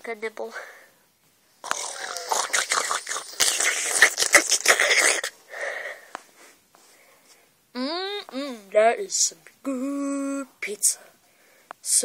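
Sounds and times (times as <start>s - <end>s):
mouth chomping and munching: 1.6s - 5.4s.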